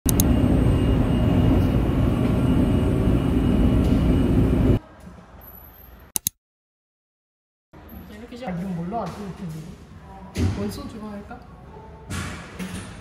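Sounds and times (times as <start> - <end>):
subway train rumble: 0.1 - 5.4.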